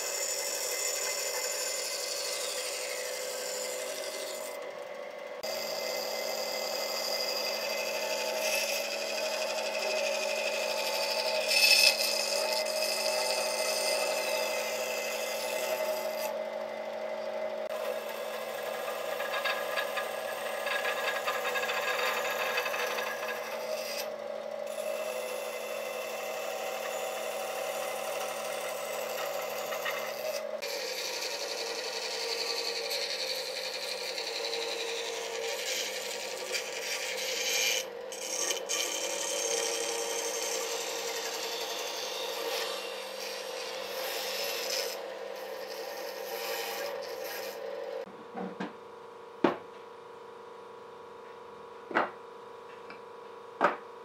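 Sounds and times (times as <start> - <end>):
saw blade cutting log: 0.0 - 4.8, 5.4 - 48.1
bandsaw motor hum: 0.0 - 54.0.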